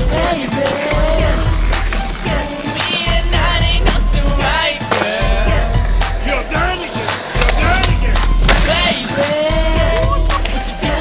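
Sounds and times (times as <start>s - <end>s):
pop song with singing: 0.0s - 11.0s
skateboard wheels rolling on concrete: 0.0s - 11.0s
skateboard tail clack: 4.9s - 5.2s, 7.1s - 9.5s.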